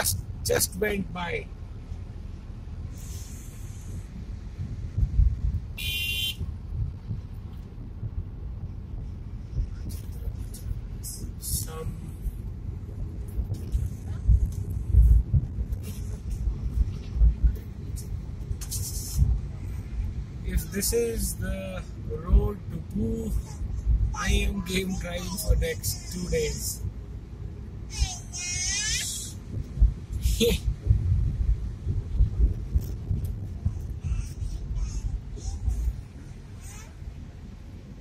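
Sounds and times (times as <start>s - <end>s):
car road and engine rumble: 0.0s - 38.0s
low thumps: 4.0s - 11.0s, 12.2s - 18.6s, 29.4s - 36.4s.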